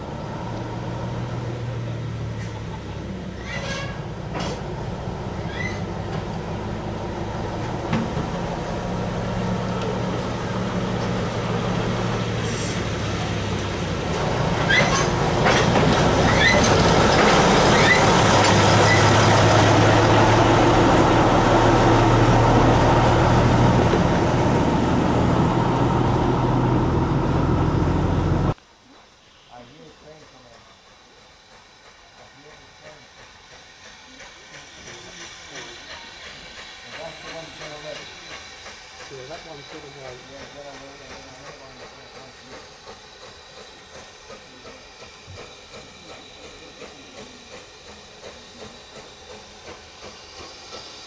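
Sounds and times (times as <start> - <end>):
diesel locomotive engine passing: 0.0 - 51.0.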